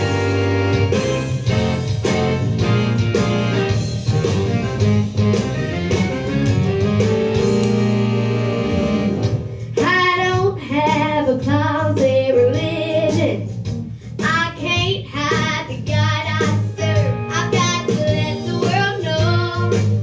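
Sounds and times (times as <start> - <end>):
guitar accompaniment: 0.0 - 9.7
girl singing into a microphone: 9.7 - 13.5, 14.2 - 20.0.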